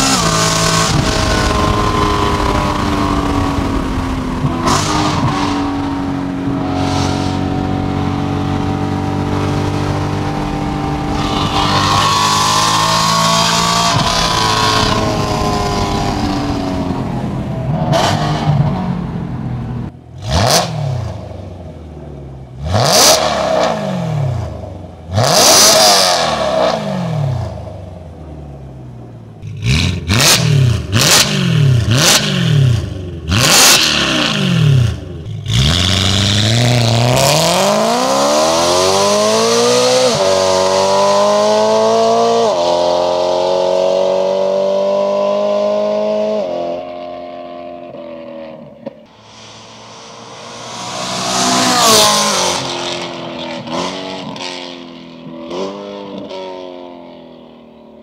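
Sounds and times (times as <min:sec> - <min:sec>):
engine free revs: 0:00.0 - 0:19.1, 0:49.1 - 0:54.8
car engine accelerating: 0:00.0 - 0:43.2, 0:49.1 - 0:56.3.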